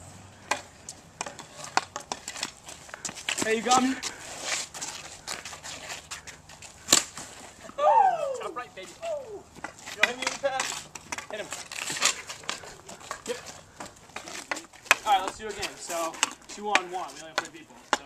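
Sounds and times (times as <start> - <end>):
hockey stick knocking ball: 0.4 - 3.9, 9.6 - 15.4, 16.0 - 18.0
person calling out: 7.8 - 9.4.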